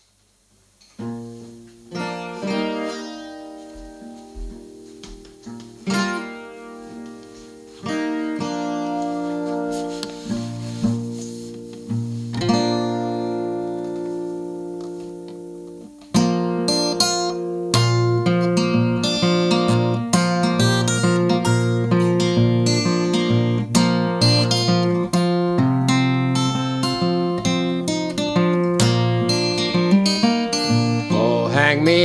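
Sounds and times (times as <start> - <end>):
acoustic guitar picking: 0.9 - 32.0
acoustic guitar chords ringing: 1.0 - 32.0.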